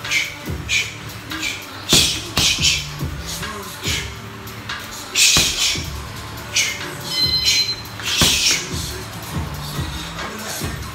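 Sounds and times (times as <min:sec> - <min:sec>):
sharp hissing exhalations: 0:00.0 - 0:07.0
brief high squeak: 0:07.0 - 0:08.6.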